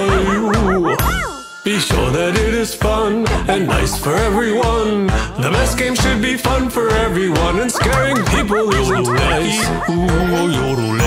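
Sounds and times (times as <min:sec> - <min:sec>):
cartoon puppy yipping and barking: 0:00.0 - 0:01.5, 0:07.6 - 0:11.0
upbeat background music: 0:00.0 - 0:11.0.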